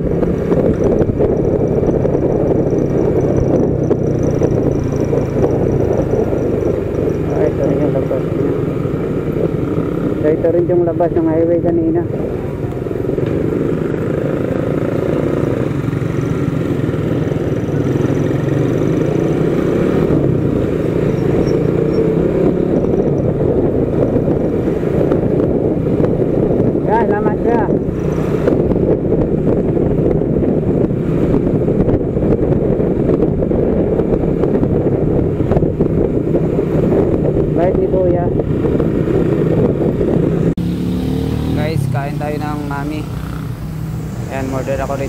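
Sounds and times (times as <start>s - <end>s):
motorcycle engine running: 0.0s - 45.0s
wind and road noise: 0.0s - 45.0s
person speaking: 7.2s - 8.3s, 41.5s - 43.1s.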